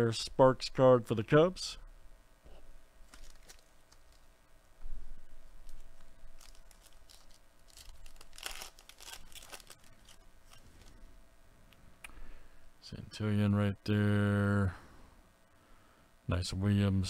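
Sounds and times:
foil wrapper tearing and crinkling: 3.0s - 4.3s, 5.6s - 11.0s.

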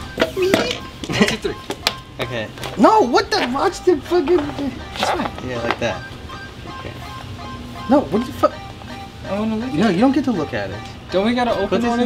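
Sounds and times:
men talking: 0.0s - 12.0s
men laughing: 0.5s - 7.1s.

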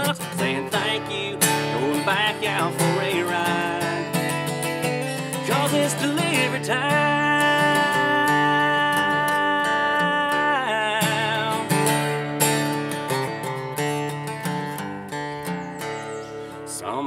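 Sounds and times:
acoustic guitar strummed and picked: 0.0s - 17.0s.

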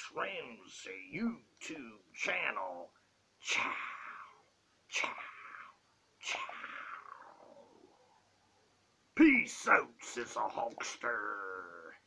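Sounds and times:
man's raspy voice: 0.0s - 7.7s, 9.2s - 12.0s.

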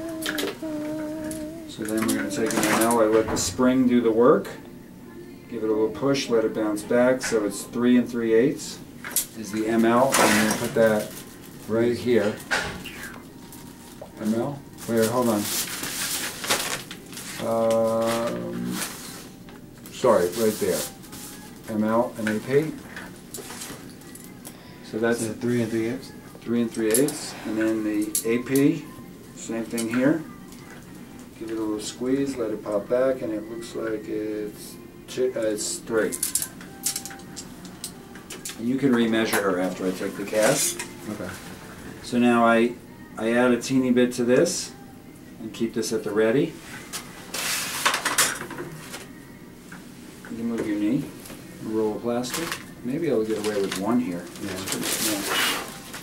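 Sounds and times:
plastic rustling: 9.8s - 12.5s, 13.4s - 24.2s, 52.2s - 56.0s.

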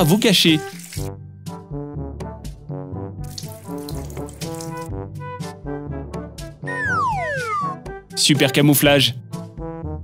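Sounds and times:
water pouring into plant pot: 0.0s - 1.2s, 3.2s - 4.9s
background music with quick beat: 6.4s - 9.2s.

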